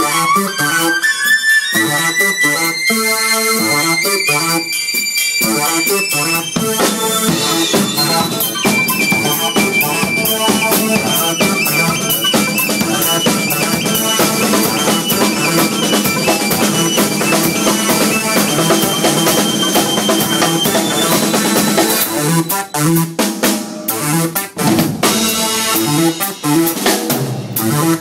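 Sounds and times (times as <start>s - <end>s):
high synth lead: 0.0s - 26.8s
drum kit fast beat: 0.0s - 28.0s.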